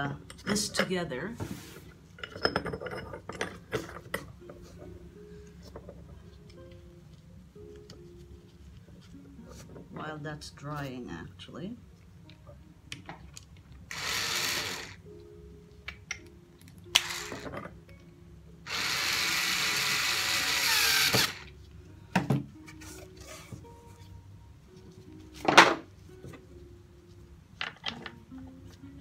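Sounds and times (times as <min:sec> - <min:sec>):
electric drill running: 0:13.9 - 0:15.0, 0:16.9 - 0:17.5, 0:18.6 - 0:21.5.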